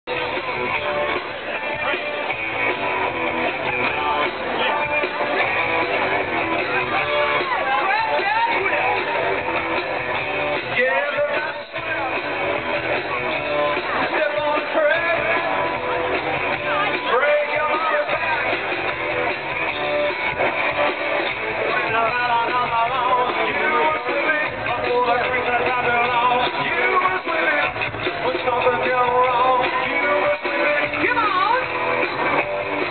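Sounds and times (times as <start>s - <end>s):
live band through pa: 0.1s - 32.9s.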